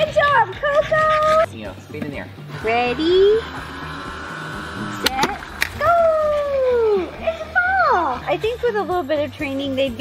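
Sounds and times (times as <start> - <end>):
ball launcher firing pop: 5.0 - 5.8.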